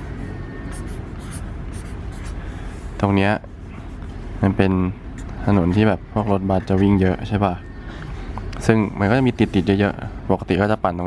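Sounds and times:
pen scratching on paper: 0.7 - 2.4.

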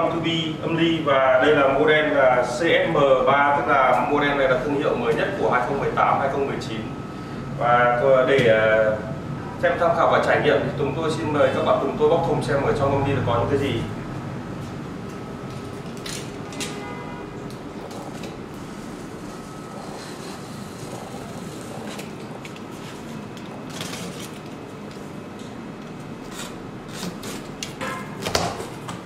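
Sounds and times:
packing tape slit and peeled: 23.4 - 24.6.

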